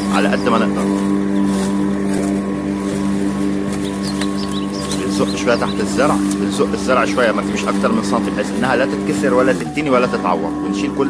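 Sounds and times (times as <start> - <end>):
electric lawn mower cutting grass: 0.0 - 11.0.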